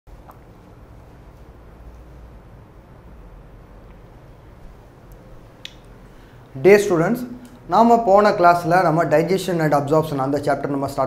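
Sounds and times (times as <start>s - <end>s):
steady low hum: 0.1s - 11.0s.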